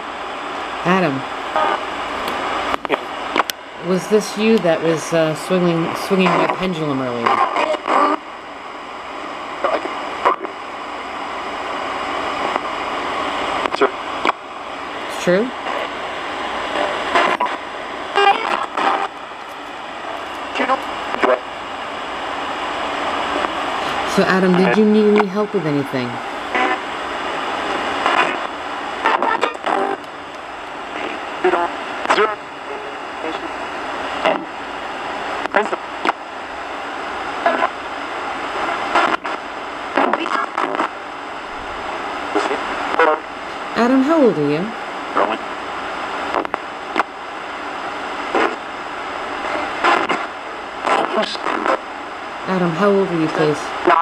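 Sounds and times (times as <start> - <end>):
radio static hiss: 0.0 - 54.0
snatches of broadcast voices: 0.3 - 8.4, 9.1 - 54.0
broadcast voice fragments: 23.8 - 26.3, 50.9 - 51.8, 52.4 - 54.0.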